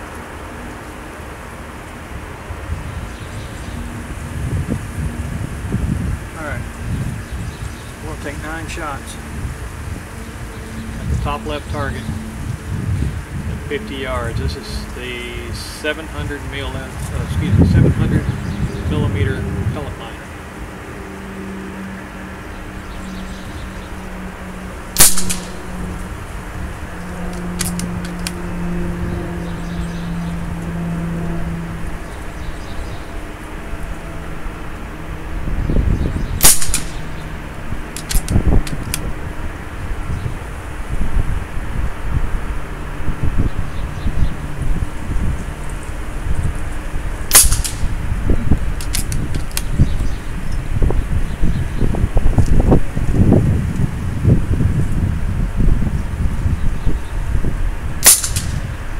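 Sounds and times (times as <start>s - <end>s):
air rifle shots: 25.0s - 26.0s, 36.4s - 37.1s, 47.3s - 48.0s, 58.0s - 58.8s.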